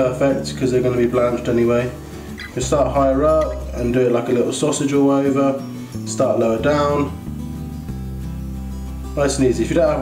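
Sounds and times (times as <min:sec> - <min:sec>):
guitar piece: 0:00.0 - 0:10.0
bass line: 0:02.4 - 0:04.1, 0:06.2 - 0:10.0.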